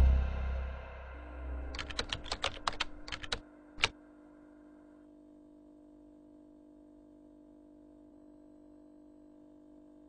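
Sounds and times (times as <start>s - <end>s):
computer keyboard typing: 1.7s - 3.9s.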